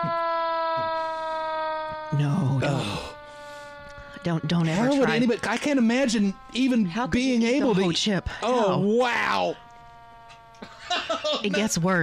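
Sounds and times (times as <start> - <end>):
siren-like tone: 0.0 - 12.0.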